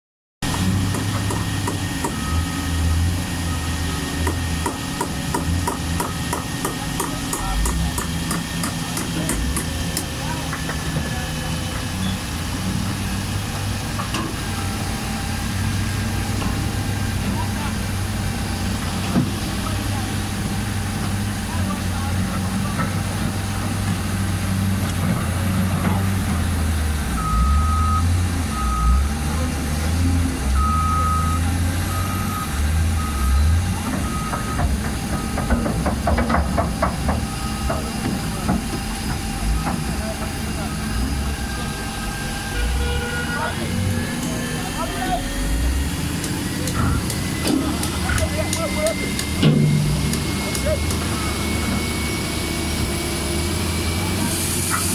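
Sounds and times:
diesel engine working under load: 0:00.4 - 0:54.9
reversing alarm beeping: 0:01.3 - 0:09.1, 0:27.1 - 0:29.4, 0:30.4 - 0:35.8, 0:37.1 - 0:52.9.

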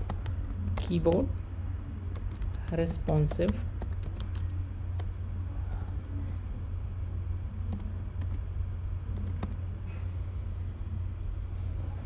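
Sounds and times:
keyboard typing: 0:00.0 - 0:01.3, 0:02.1 - 0:06.1, 0:07.6 - 0:08.5, 0:09.1 - 0:09.7
low hum: 0:00.0 - 0:12.0.

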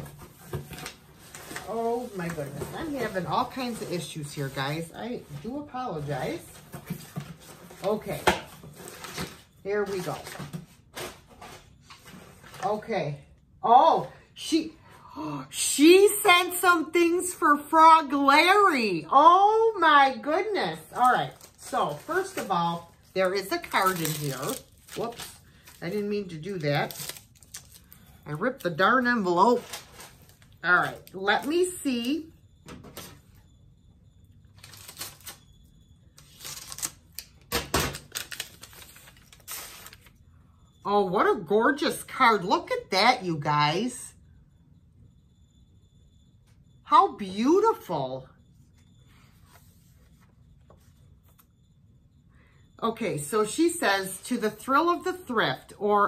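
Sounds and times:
package paper rustling: 0:20.9 - 0:28.2, 0:29.4 - 0:31.8, 0:36.3 - 0:37.3, 0:37.9 - 0:40.2.

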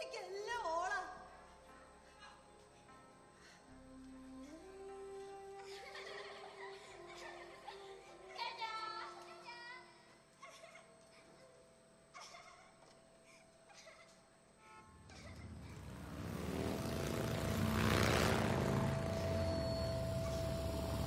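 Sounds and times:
vehicle engine and road noise: 0:14.9 - 0:21.0.

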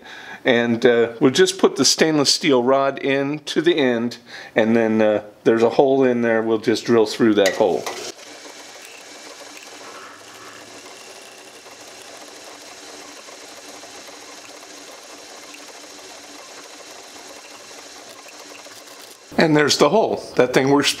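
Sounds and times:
drill boring through steel: 0:07.7 - 0:19.4
drill press motor hum: 0:07.7 - 0:19.4.

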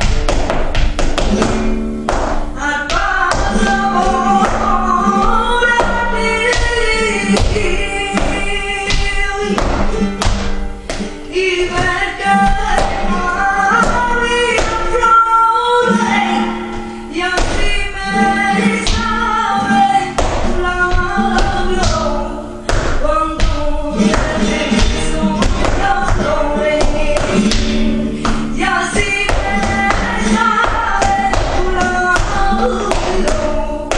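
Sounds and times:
flamenco music: 0:00.0 - 0:33.9
person singing: 0:02.6 - 0:10.0, 0:11.2 - 0:33.9.

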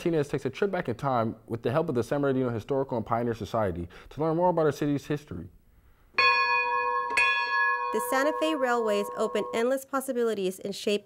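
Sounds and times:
bell-like chime ringing: 0:06.2 - 0:09.8.

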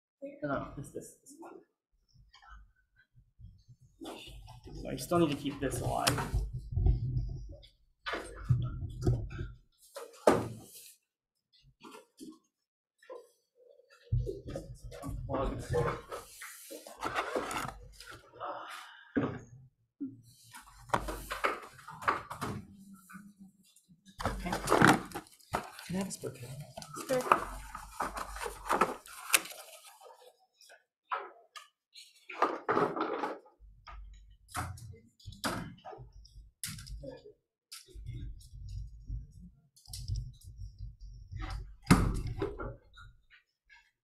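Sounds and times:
handling noise rubbing and scraping: 0:15.6 - 0:18.1.

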